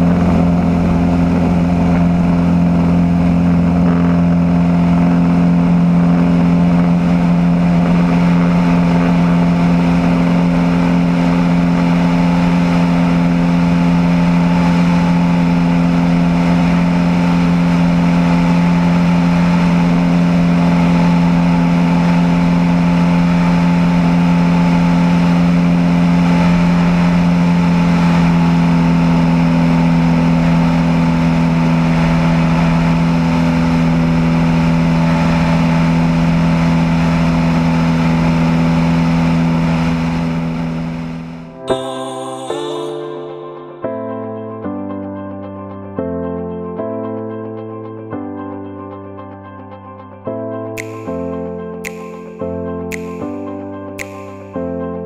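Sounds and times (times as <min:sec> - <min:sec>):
airplane engine droning: 0:00.0 - 0:43.8.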